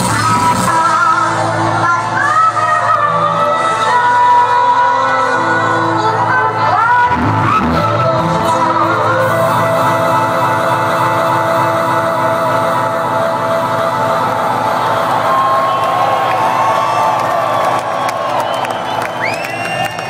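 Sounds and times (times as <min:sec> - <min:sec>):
electronic dance music: 0:00.0 - 0:20.0
crowd cheering and whooping: 0:13.8 - 0:20.0.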